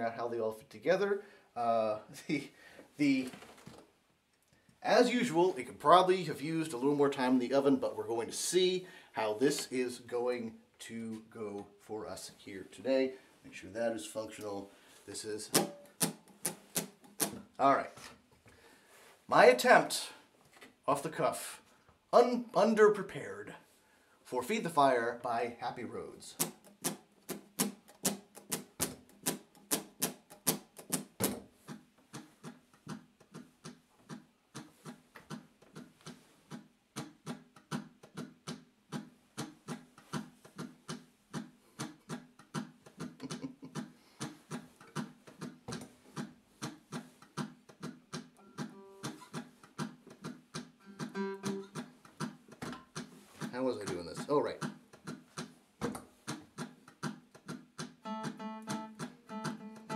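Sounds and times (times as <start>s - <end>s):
short held notes: 50.8s - 51.8s
acoustic guitar picking: 50.8s - 52.0s, 58.0s - 59.9s.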